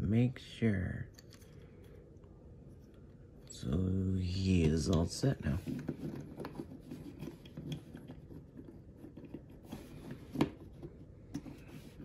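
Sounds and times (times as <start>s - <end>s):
plastic rubbing and scraping: 4.5s - 12.0s.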